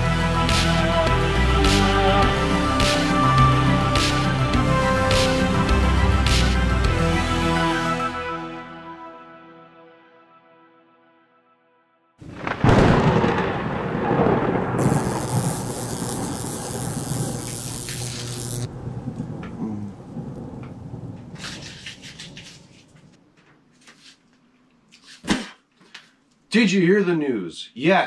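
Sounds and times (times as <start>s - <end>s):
thunder crack and rumble: 12.2s - 17.4s, 18.7s - 22.3s
rain hiss: 14.2s - 22.4s.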